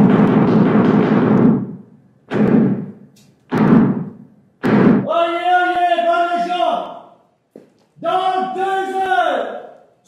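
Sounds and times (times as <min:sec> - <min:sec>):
heavy deep knocks: 0:00.0 - 0:05.1.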